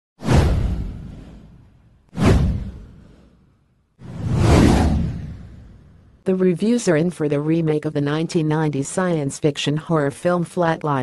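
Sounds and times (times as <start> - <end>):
deep whoosh effects: 0.2 - 6.2.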